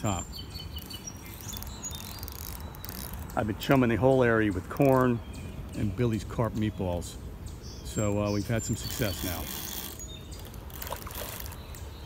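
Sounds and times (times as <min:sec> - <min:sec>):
thin high chirps: 0:00.2 - 0:03.4.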